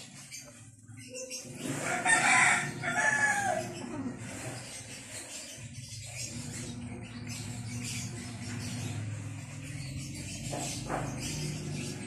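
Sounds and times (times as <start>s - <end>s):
rooster crowing: 1.8s - 3.8s.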